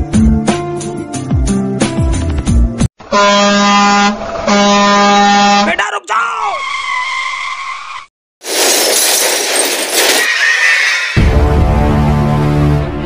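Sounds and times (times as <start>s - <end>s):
background music: 0.0s - 2.9s, 11.2s - 13.0s
truck air horn blasts: 3.0s - 5.7s
steady squeal: 9.1s - 11.3s
squeal falling in pitch: 10.2s - 11.2s.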